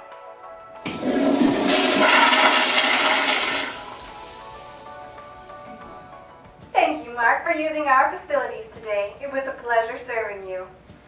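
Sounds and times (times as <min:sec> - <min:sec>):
soft background music: 0:00.0 - 0:11.0
toilet flushing: 0:00.8 - 0:06.3.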